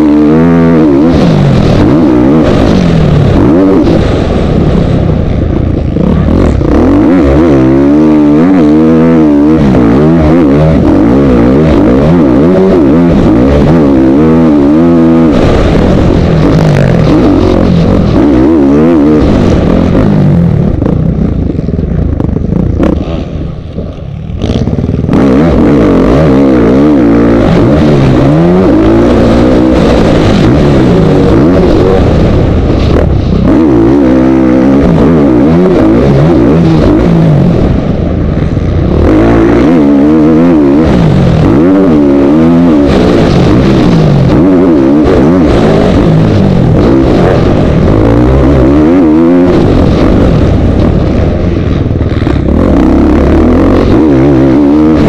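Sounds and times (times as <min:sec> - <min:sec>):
motocross bike engine revving: 0:00.0 - 0:55.0.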